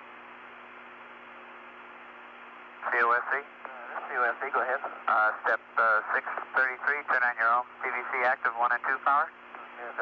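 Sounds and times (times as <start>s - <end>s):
low steady hum: 0.0s - 10.0s
radio hiss: 2.8s - 10.0s.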